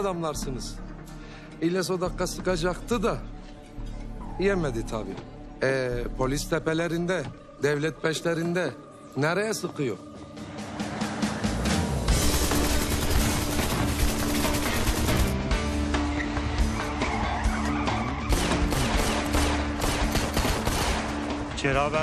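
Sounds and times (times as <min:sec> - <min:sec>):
tense dramatic music: 0:00.0 - 0:22.0
rapid pistol shots: 0:12.1 - 0:15.5, 0:18.3 - 0:21.4.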